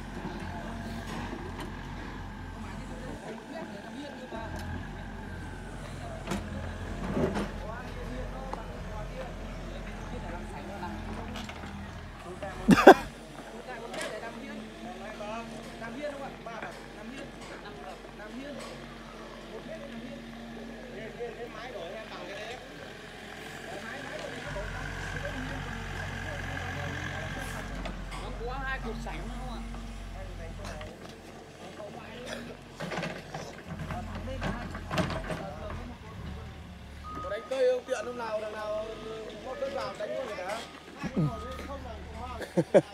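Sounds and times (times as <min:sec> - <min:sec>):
diesel engine rumble: 0:00.0 - 0:13.6
excavator diesel engine running: 0:00.0 - 0:37.2.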